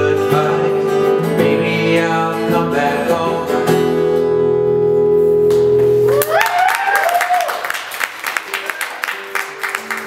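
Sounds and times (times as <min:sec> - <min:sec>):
hand clapping: 0:05.5 - 0:10.0
wavering whoop: 0:06.1 - 0:07.8.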